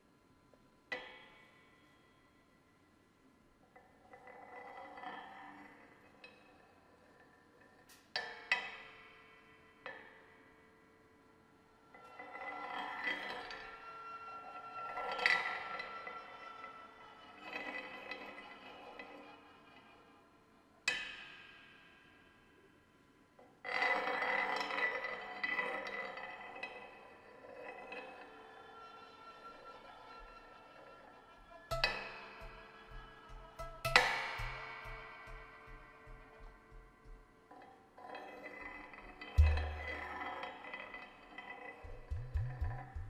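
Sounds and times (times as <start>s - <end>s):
cymbals and metal struck by hand: 31.7s - 37.2s, 39.4s - 40.2s, 41.8s - 43.0s.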